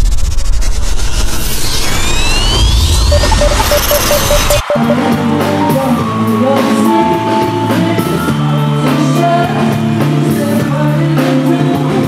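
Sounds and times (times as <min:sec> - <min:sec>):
rising sweeps: 0:00.1 - 0:08.8
quick repeated high note: 0:03.1 - 0:05.4.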